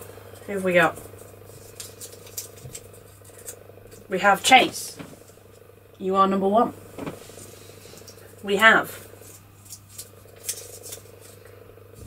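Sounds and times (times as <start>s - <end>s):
steady low hum: 0.0s - 12.0s
paper crinkling: 0.3s - 4.1s, 9.0s - 11.6s.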